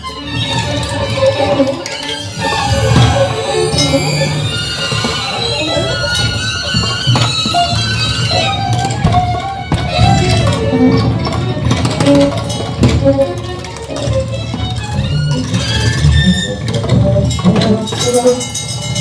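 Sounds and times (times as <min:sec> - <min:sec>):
steady low drone: 0:00.0 - 0:18.8
percussion clicks and knocks: 0:00.0 - 0:19.0
plucked and bowed violin: 0:00.0 - 0:19.0.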